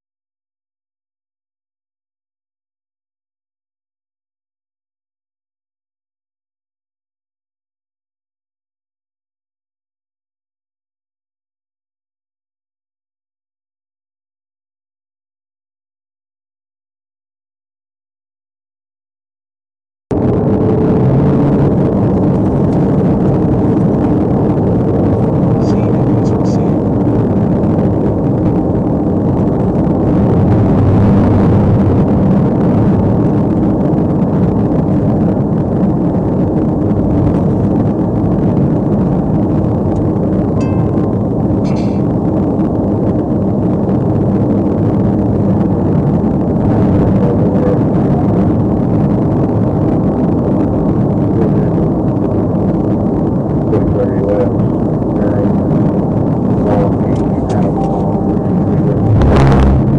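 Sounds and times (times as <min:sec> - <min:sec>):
car engine and road noise: 0:20.1 - 0:59.9.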